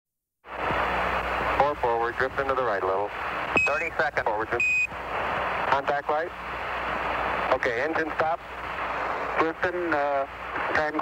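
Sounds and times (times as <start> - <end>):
radio static hiss: 0.5 - 11.0.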